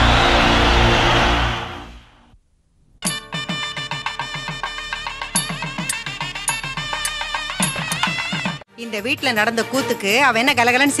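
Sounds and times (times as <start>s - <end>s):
loud rushing noise: 0.0s - 2.3s.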